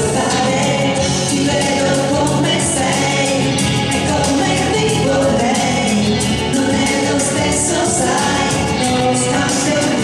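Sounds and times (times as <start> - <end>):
backing music: 0.0 - 10.0
woman singing a ballad: 0.0 - 10.0.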